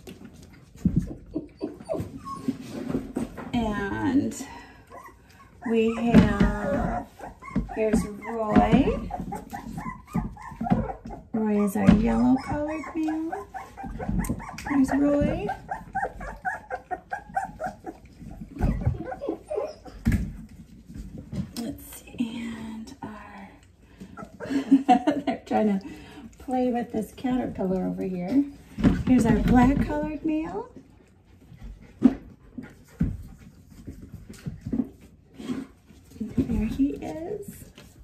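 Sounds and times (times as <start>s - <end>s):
puppy whimpering: 0.9s - 3.0s, 3.8s - 20.4s, 24.0s - 24.8s.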